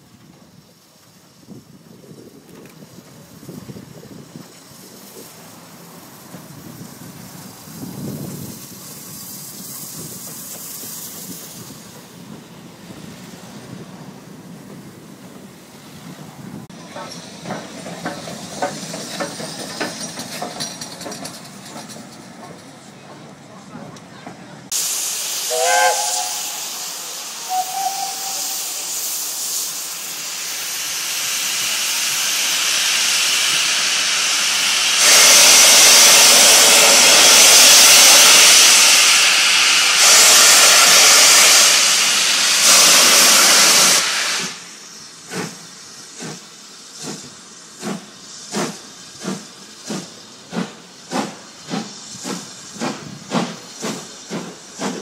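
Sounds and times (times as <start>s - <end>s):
steam hissing from drain cocks: 24.7s - 55.0s
steam locomotive whistle: 25.4s - 29.0s.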